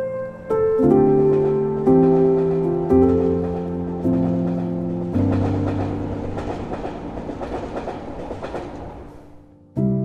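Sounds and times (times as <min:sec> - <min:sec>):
train wheels clacking on track: 0:00.9 - 0:09.4.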